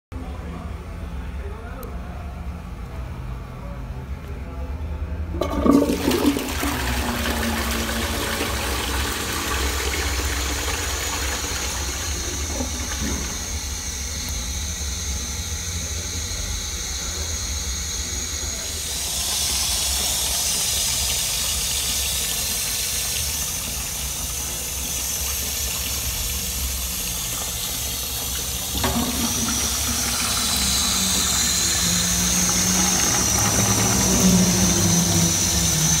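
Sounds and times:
toilet flushing: 5.3s - 15.3s, 17.2s - 36.0s
cistern refilling hiss: 18.6s - 36.0s.

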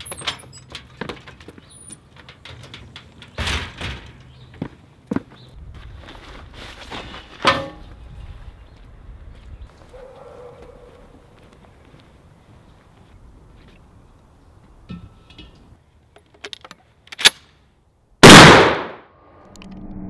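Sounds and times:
metallic clicks of gun handling: 16.2s - 17.5s
shotgun shot: 18.2s - 19.1s
rising noise: 19.1s - 20.0s.

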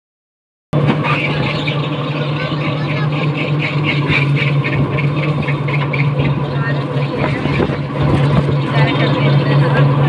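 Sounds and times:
light high pulsing: 0.8s - 10.0s
road noise: 0.8s - 10.0s
vehicle engine running: 0.8s - 10.0s.

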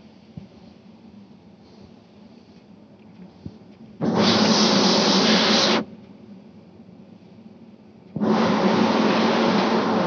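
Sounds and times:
compressed air hissing: 3.4s - 5.9s, 8.2s - 10.0s.

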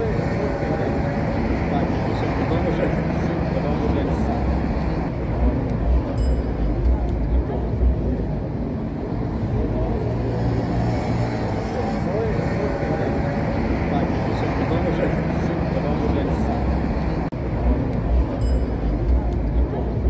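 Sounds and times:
people talking: 0.0s - 20.0s
street traffic rumble: 0.0s - 20.0s.

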